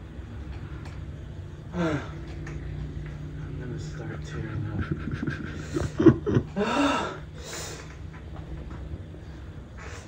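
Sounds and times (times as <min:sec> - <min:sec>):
man breathing hard: 0:05.5 - 0:08.0.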